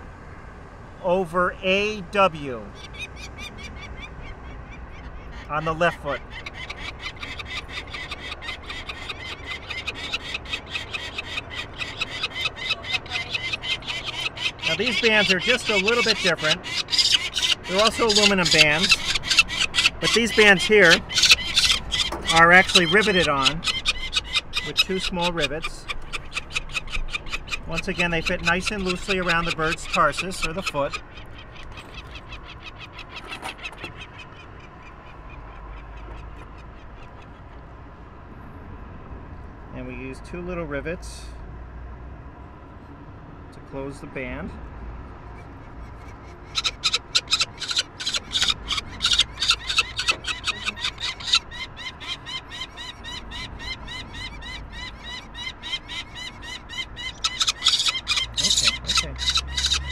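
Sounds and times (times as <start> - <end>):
falcon chick calling: 2.5 - 37.7, 45.4 - 59.9.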